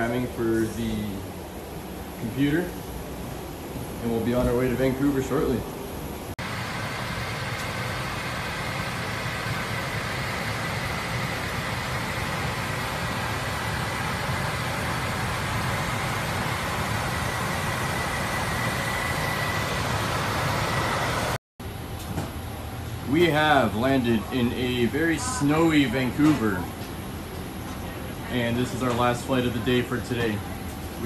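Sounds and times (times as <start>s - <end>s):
aircraft cockpit drone: 5.1s - 21.8s.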